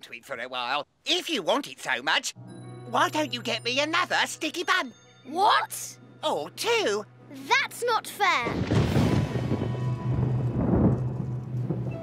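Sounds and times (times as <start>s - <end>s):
thunder rumbling: 8.4s - 12.0s.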